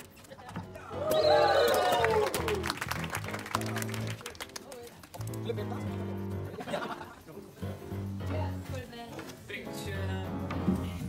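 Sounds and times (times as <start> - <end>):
crowd cheering woo: 0.8 - 3.9
scattered clapping: 1.6 - 5.8
background music with bass line: 5.2 - 11.0.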